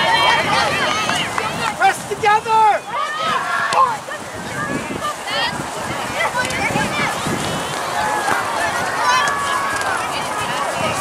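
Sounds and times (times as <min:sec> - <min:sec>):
outdoor noise: 0:00.0 - 0:11.0.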